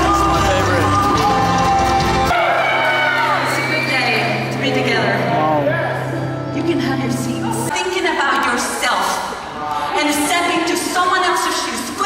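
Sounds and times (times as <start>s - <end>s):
woman singing: 0.0s - 2.3s
live worship band music: 0.0s - 7.7s.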